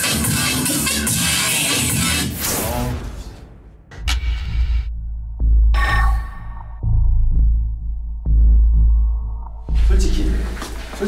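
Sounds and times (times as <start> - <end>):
deep throbbing bass pulses: 3.9 - 10.6.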